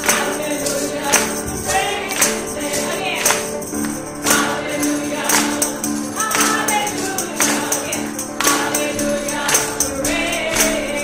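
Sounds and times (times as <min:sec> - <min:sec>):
people singing gospel: 0:00.0 - 0:11.0
tambourine struck: 0:00.0 - 0:11.0.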